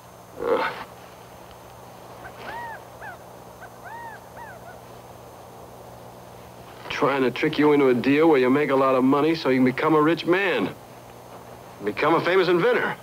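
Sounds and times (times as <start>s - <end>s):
steady low hum: 0.0s - 13.0s
bird calling: 2.2s - 5.0s.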